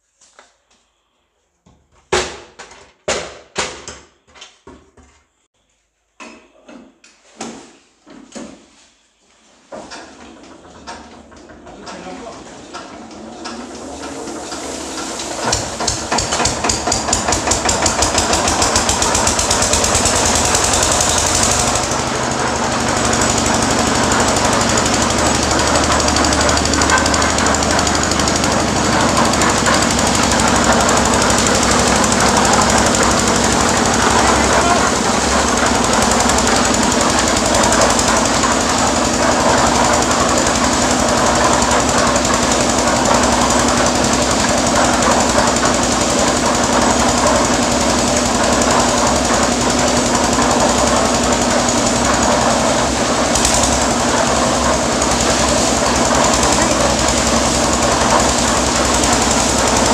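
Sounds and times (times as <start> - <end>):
concrete mixer drum churning: 10.0 - 59.9
diesel engine knocking: 15.4 - 59.9.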